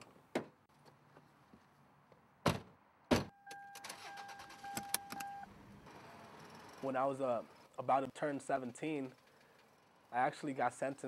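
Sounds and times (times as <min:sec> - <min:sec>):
car door thuds: 0:02.4 - 0:03.3
car electronic warning tone: 0:03.3 - 0:05.5.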